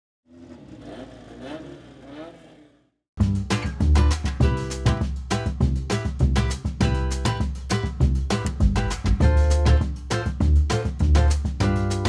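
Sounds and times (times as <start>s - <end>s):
car engine revving: 0.3s - 3.0s.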